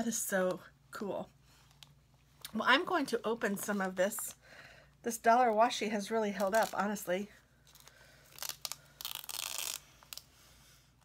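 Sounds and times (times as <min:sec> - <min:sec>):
tape peeling off plastic: 0:06.4 - 0:06.8, 0:07.7 - 0:10.3.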